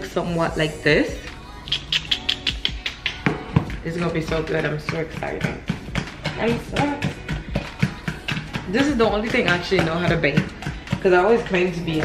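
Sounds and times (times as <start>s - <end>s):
soft background music: 0.0s - 12.0s
fork mashing in plastic bowl: 1.7s - 12.0s.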